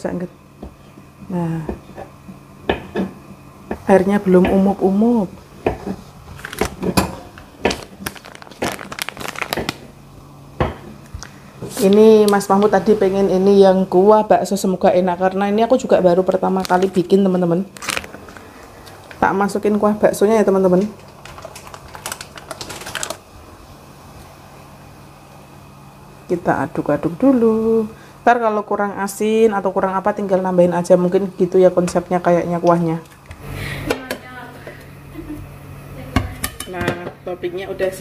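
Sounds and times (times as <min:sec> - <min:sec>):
plastic packaging crinkling: 0:06.2 - 0:09.9, 0:16.2 - 0:19.2, 0:20.9 - 0:23.3.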